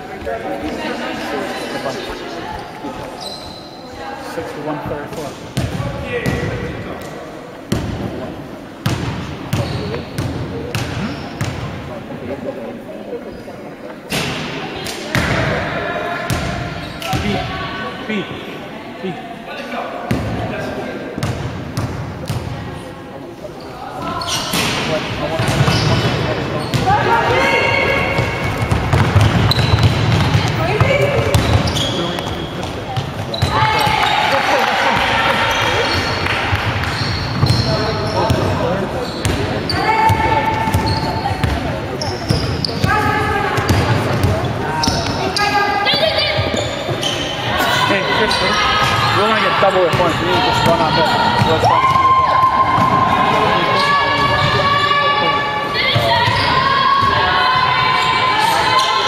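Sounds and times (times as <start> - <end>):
shoes squeaking: 2.6 - 4.0, 9.5 - 10.2, 25.4 - 34.2, 35.4 - 49.4
basketball bouncing: 28.1 - 34.0
players shouting: 42.8 - 59.0.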